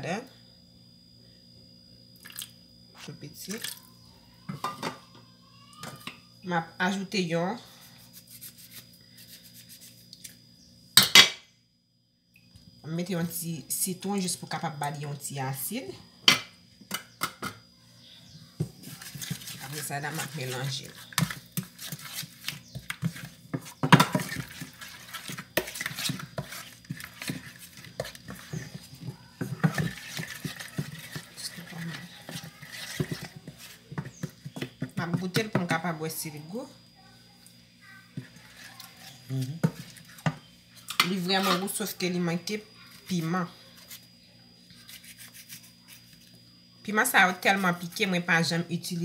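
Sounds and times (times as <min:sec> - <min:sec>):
wooden spoon scraping metal pan: 0:18.8 - 0:35.6, 0:40.9 - 0:41.8.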